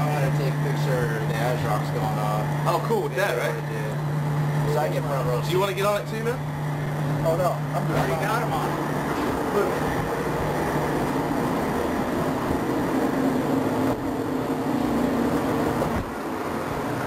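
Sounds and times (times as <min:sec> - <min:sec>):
low steady hum: 0:00.0 - 0:17.0
machinery and ventilation din: 0:00.0 - 0:17.0.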